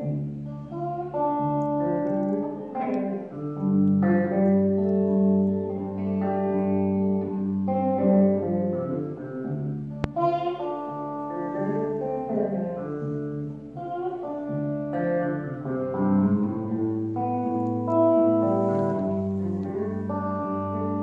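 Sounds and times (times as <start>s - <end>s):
solo electric guitar: 0.0s - 21.0s.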